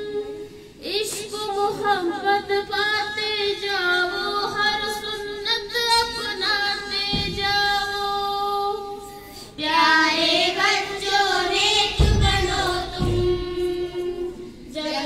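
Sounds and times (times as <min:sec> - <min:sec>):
girls singing together: 0:00.0 - 0:15.0
short low thumps: 0:11.8 - 0:14.3.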